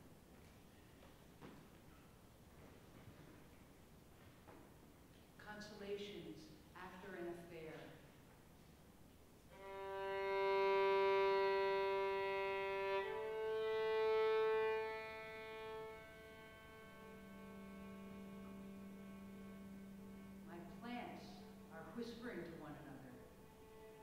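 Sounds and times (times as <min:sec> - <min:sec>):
violin sustained bowed notes: 0:09.5 - 0:24.0.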